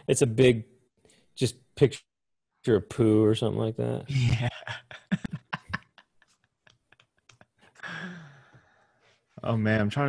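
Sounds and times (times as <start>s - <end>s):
man laughing: 4.1s - 8.2s
man sighing breath out: 7.8s - 8.9s.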